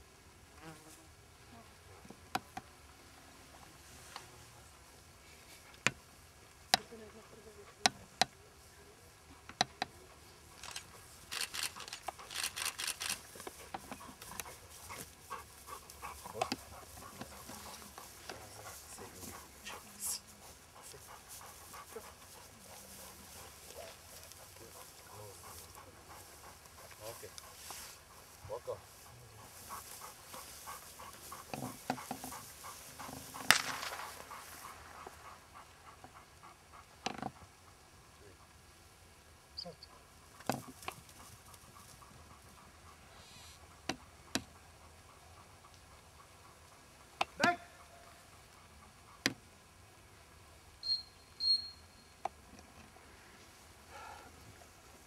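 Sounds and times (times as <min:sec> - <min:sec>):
dog panting: 0:09.8 - 0:38.6, 0:39.8 - 0:49.7
quick even ticking: 0:10.6 - 0:13.3
scattered clicks: 0:10.6 - 0:13.6.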